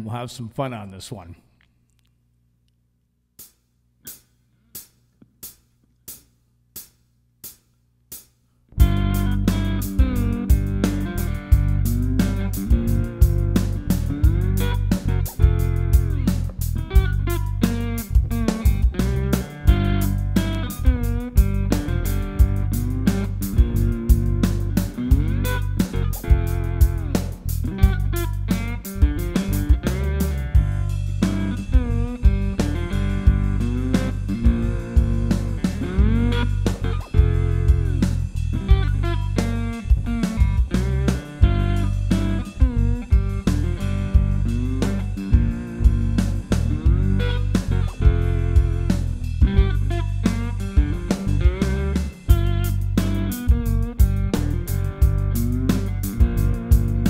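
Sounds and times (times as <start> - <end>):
backing track beat and bass: 8.8 - 57.0
slide guitar: 8.8 - 57.0.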